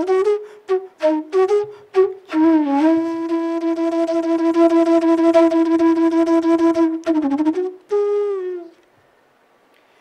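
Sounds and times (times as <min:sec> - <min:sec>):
bamboo flute playing: 0:00.0 - 0:08.8.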